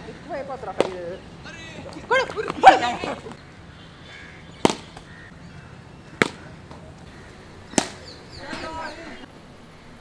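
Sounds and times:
cricket bat striking ball: 0:04.6 - 0:05.1, 0:06.2 - 0:06.8, 0:07.7 - 0:08.1.

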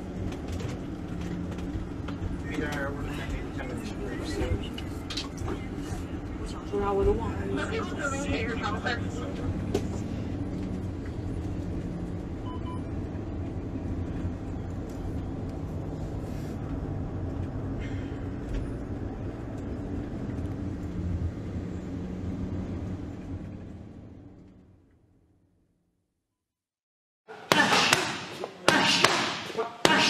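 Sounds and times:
vehicle engine rumble inside cabin: 0:00.0 - 0:25.7.

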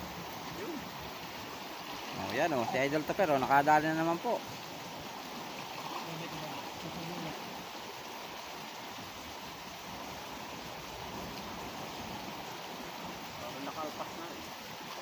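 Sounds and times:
fast river flowing: 0:00.0 - 0:15.0.

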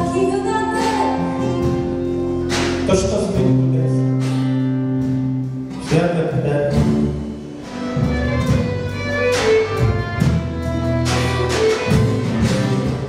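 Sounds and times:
guitar chords: 0:00.0 - 0:13.0.

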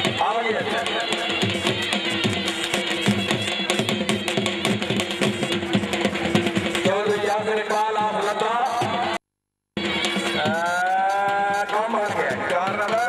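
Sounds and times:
music with fast drum beat: 0:00.0 - 0:09.2, 0:09.8 - 0:13.0.

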